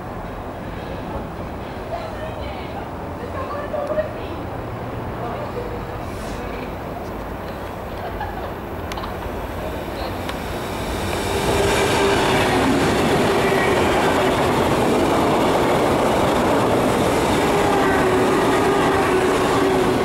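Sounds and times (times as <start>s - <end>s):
train wheels rushing on rail: 0.0s - 20.0s.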